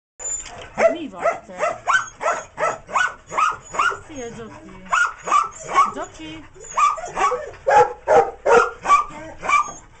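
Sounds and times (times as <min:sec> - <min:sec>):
dog barking: 0:00.8 - 0:04.0, 0:04.9 - 0:06.0, 0:06.8 - 0:09.8.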